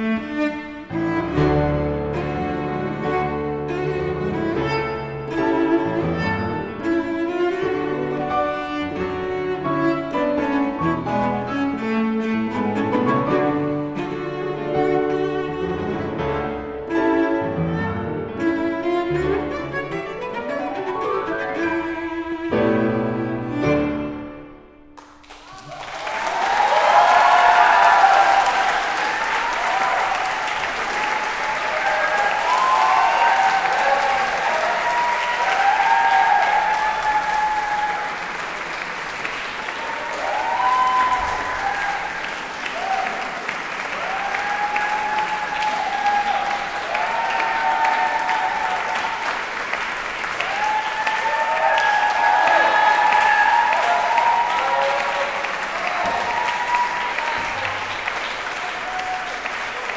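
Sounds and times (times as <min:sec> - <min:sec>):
audience applause: 0:25.0 - 0:59.9
crowd cheering: 0:25.0 - 0:59.9.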